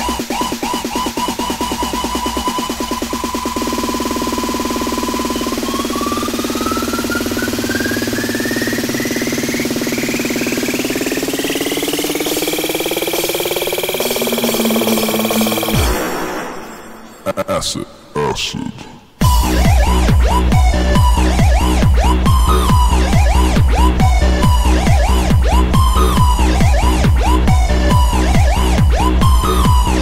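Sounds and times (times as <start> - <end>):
rave beat: 0.0 - 16.0, 19.2 - 30.0
rising buzzing synth tone: 2.2 - 16.6.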